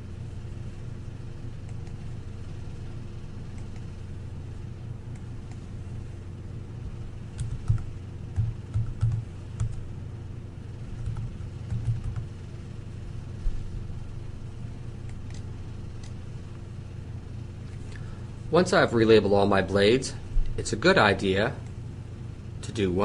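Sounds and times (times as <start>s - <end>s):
low electrical hum: 0.0s - 23.0s
typing on keyboard: 7.4s - 9.8s, 11.0s - 12.3s.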